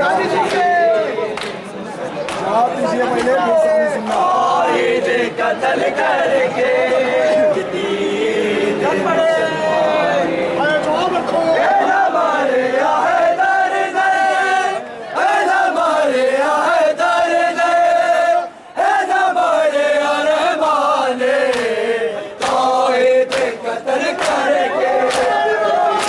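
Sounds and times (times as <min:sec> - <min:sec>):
men chanting a lament: 0:02.4 - 0:26.0.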